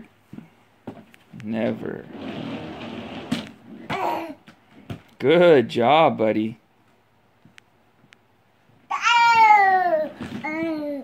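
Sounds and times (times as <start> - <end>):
plastic scraping over rug: 1.6 - 4.0
toddler vocal sound: 3.8 - 4.5, 8.9 - 11.0.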